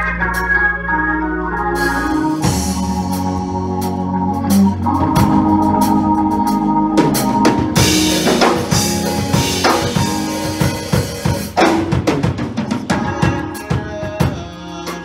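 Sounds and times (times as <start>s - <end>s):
organ chords: 0.0s - 15.0s
drum kit beating: 1.8s - 15.0s.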